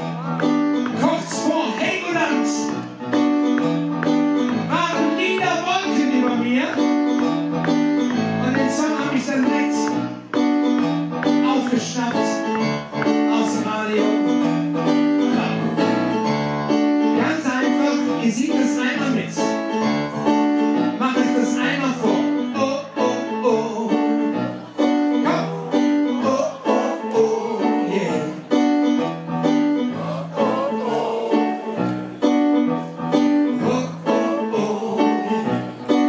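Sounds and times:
man singing: 0.0 - 2.8, 4.6 - 7.7, 8.4 - 10.0, 10.7 - 12.6, 13.2 - 14.4, 15.2 - 16.1, 17.2 - 28.6, 33.4 - 36.0
piano playing: 0.0 - 36.0.

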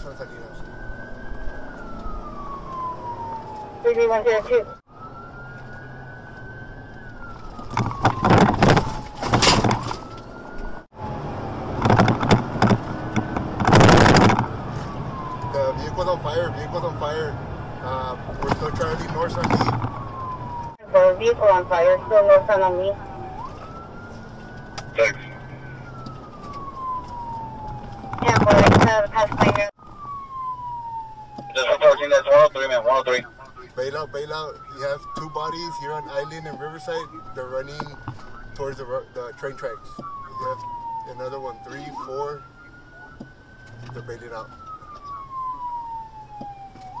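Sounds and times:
engine and road noise: 0.0 - 47.0
police siren wailing: 0.0 - 47.0.

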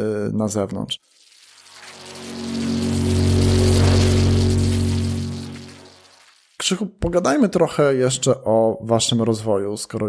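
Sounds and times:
airy whoosh: 1.6 - 6.3
held low chord: 1.9 - 6.2.

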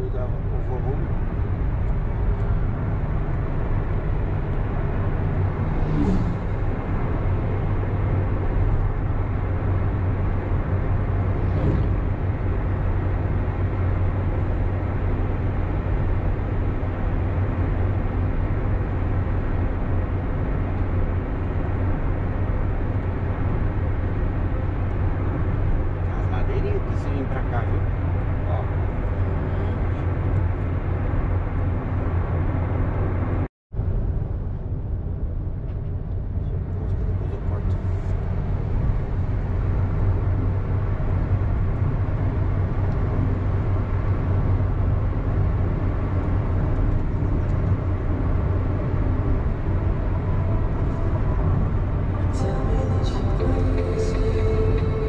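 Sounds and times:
car cabin road and engine noise: 0.0 - 55.0.

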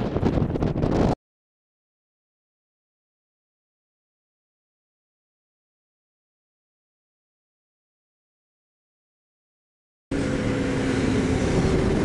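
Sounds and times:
wind buffeting microphone: 0.0 - 1.2, 10.1 - 12.0.

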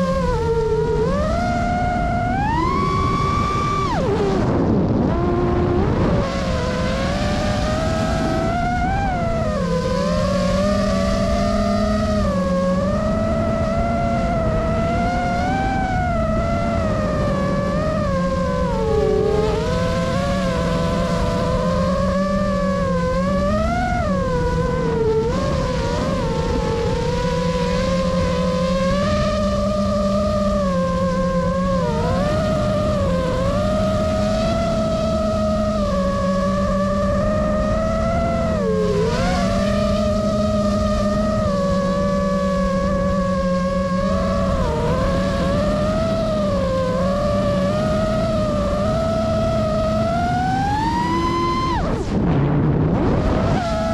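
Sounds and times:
drone motors whining: 0.0 - 53.9
rush of air: 51.6 - 53.9.

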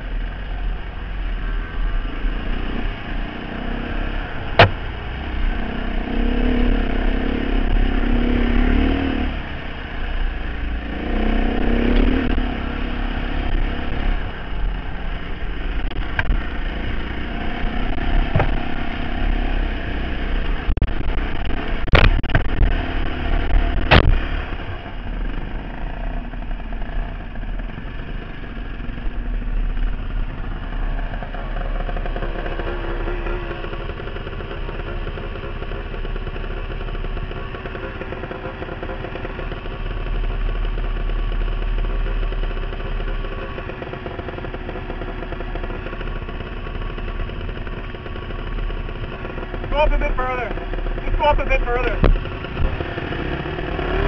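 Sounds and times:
dirt bike engine: 0.0 - 54.0
sharp knocks: 4.6 - 4.9, 18.2 - 18.6.

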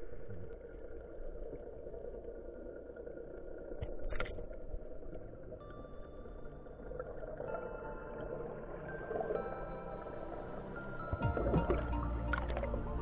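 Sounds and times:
muffled underwater rumble: 0.0 - 9.3.

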